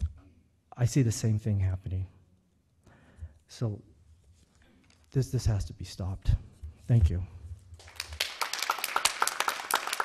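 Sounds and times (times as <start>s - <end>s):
audience applauding: 7.8s - 10.0s.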